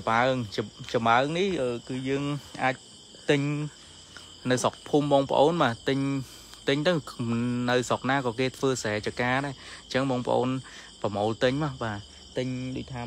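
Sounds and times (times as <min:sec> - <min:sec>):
insects chirring: 0:00.0 - 0:13.0
man speaking: 0:00.0 - 0:13.0.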